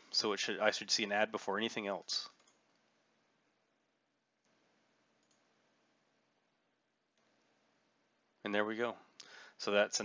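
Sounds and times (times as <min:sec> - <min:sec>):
faint recording hiss: 0:00.0 - 0:10.0
computer mouse click: 0:02.3 - 0:02.8, 0:05.2 - 0:05.5.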